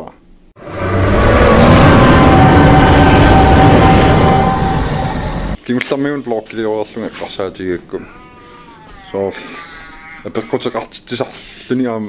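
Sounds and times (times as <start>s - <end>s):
high-pitched whining cry: 0.8s - 5.6s, 7.9s - 10.3s
short breathy burst: 11.3s - 11.7s.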